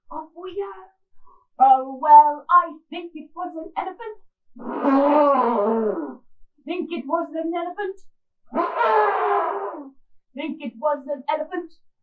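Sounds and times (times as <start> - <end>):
woman imitating elephant trumpet: 4.6 - 6.2, 8.5 - 9.9.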